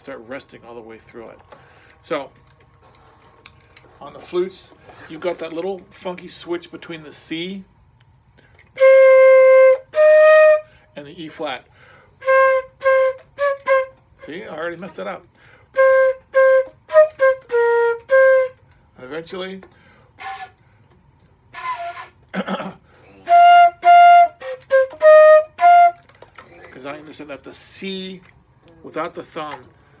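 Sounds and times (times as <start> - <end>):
flute playing held notes: 8.8 - 10.8, 12.2 - 14.3, 15.7 - 18.7, 20.2 - 20.6, 21.5 - 22.2, 23.1 - 26.1.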